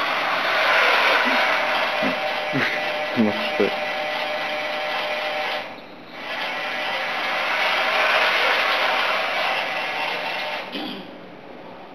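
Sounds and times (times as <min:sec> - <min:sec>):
crane model electric drive running: 0:00.0 - 0:10.9.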